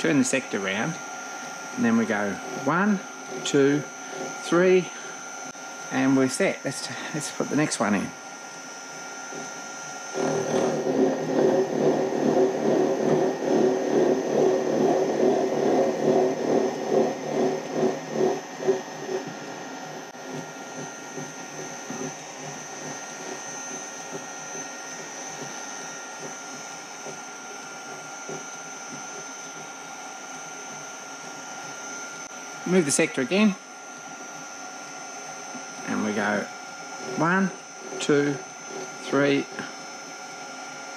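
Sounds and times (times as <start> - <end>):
machine motor whine: 0.0 - 40.9.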